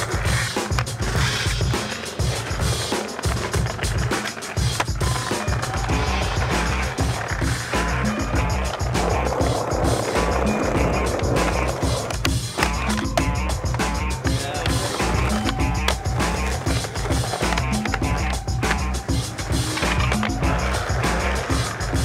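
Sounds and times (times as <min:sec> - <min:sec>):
background music with low beat: 0:00.0 - 0:22.0
skateboard clacks and landings: 0:00.0 - 0:22.0
skateboard wheels rolling on asphalt: 0:00.0 - 0:22.0.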